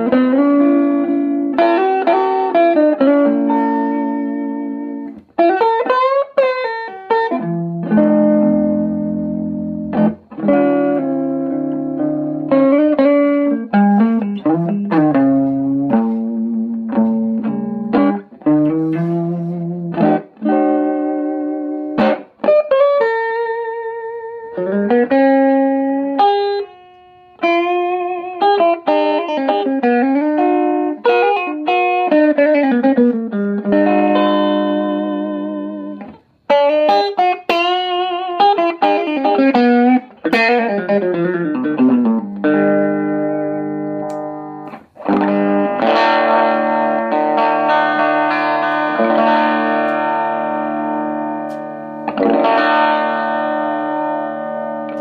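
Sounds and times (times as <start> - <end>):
electric guitar chords and notes: 0.0 - 55.0.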